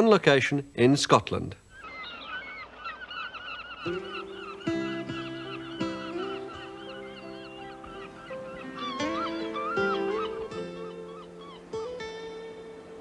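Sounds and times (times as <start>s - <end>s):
seagulls calling: 1.7s - 13.0s
film-score music with chords: 3.8s - 13.0s.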